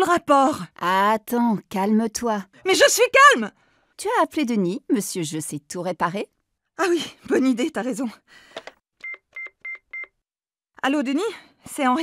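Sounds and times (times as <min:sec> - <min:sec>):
phone keypad beeps: 0:09.0 - 0:10.2.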